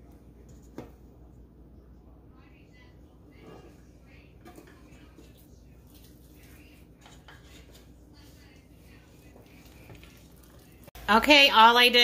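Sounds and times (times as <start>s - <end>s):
metal bowl clinking and scraping pan: 4.4s - 11.0s.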